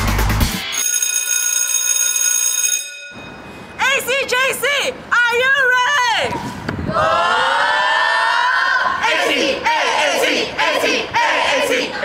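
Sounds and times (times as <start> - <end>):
high electronic alarm tone: 0.6 - 3.5.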